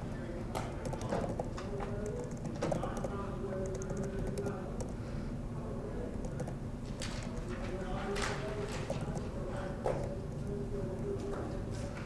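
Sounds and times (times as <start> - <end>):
computer keyboard clicks: 0.8 - 5.0, 6.2 - 7.6, 8.8 - 9.3, 9.9 - 11.1.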